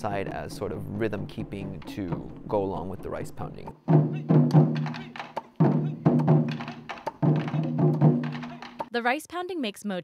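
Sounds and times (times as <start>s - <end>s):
taiko drum strikes: 3.8s - 8.9s.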